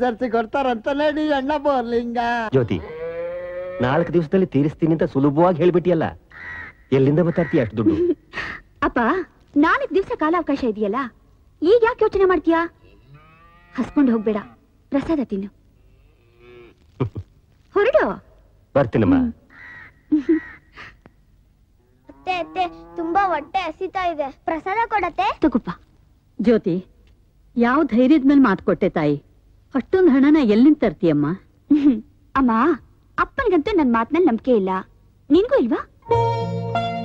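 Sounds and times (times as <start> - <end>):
bullock mooing: 2.8 - 4.0, 12.9 - 14.5, 16.0 - 16.8
bullocks mooing: 2.8 - 4.0.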